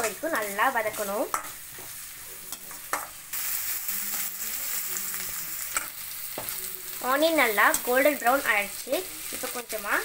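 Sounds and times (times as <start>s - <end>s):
onions sizzling in hot oil: 0.0s - 10.0s.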